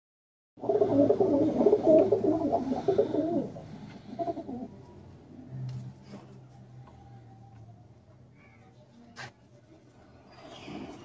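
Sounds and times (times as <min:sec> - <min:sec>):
pigeons cooing: 0:00.6 - 0:04.9.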